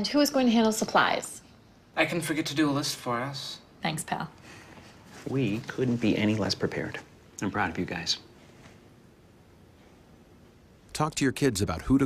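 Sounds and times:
low room hiss: 0.0s - 12.0s.

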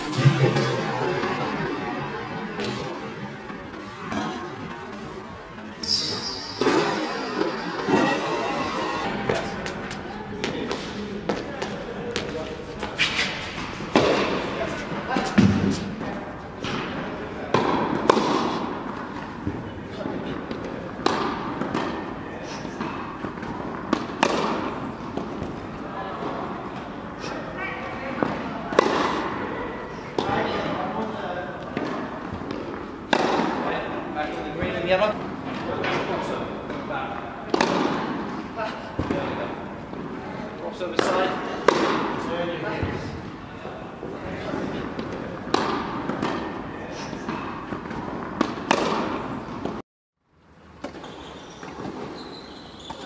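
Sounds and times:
indoor hall background: 0.0s - 53.0s
tennis balls bouncing: 9.2s - 16.0s, 16.6s - 27.0s, 28.1s - 29.4s, 31.6s - 40.2s, 40.8s - 43.0s, 44.0s - 49.8s.

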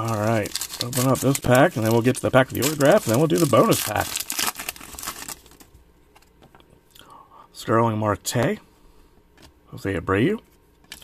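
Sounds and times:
foil wrapper crinkling: 0.0s - 5.7s.

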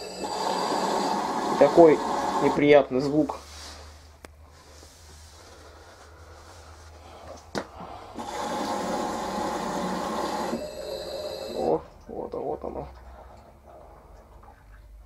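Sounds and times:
motor straining harsh whine: 0.0s - 2.6s, 8.2s - 11.9s.

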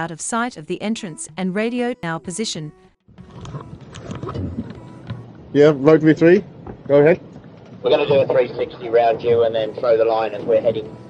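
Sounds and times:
water splashing: 3.1s - 5.2s
low engine rumble: 3.1s - 11.0s.

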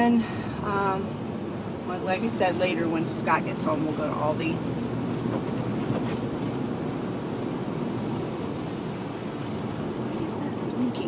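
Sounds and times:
road and engine noise in cabin: 0.0s - 11.0s.

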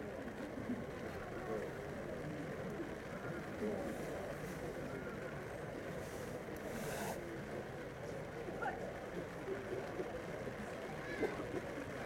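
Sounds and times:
brief hiss: 6.2s - 7.2s.

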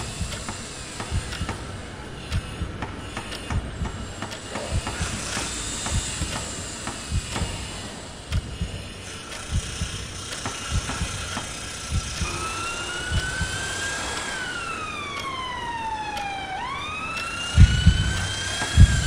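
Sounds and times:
soft low thumps: 0.0s - 8.9s, 9.5s - 12.5s, 13.1s - 13.7s, 17.6s - 19.0s
steady background hiss: 0.0s - 19.0s
siren wailing: 11.9s - 19.0s.

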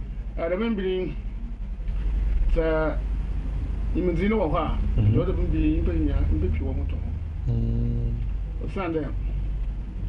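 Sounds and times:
steady low hum: 0.0s - 10.0s
man's voice: 5.0s - 5.5s, 7.5s - 8.2s.

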